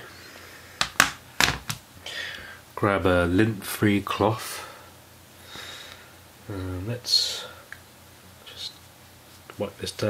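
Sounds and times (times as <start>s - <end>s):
small items clicking and tapping: 0.8s - 1.8s.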